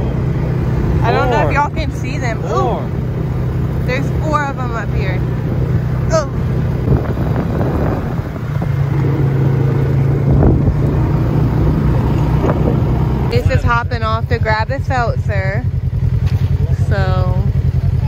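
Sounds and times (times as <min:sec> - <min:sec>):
atv engine running: 0:00.0 - 0:18.0.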